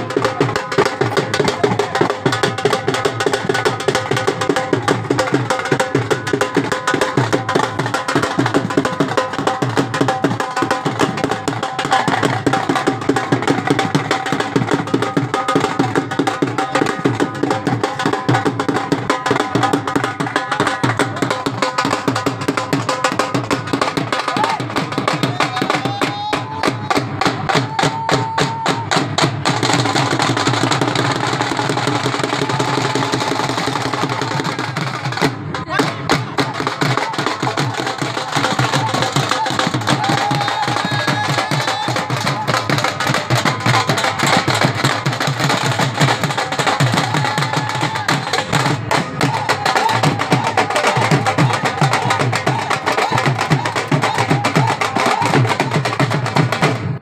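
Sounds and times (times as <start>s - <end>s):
dhol drums fast rhythm: 0.0s - 57.0s.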